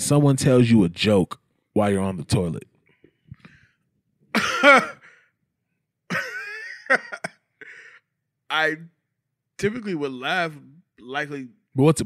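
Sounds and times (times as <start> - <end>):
man clearing his throat: 4.3 - 5.2.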